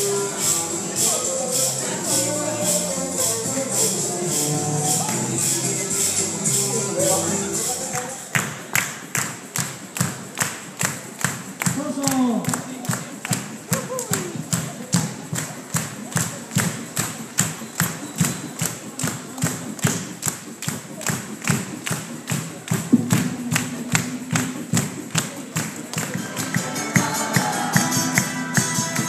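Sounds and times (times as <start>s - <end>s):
folk dance music with drum beat: 0.0s - 29.0s
held low note: 22.9s - 25.2s.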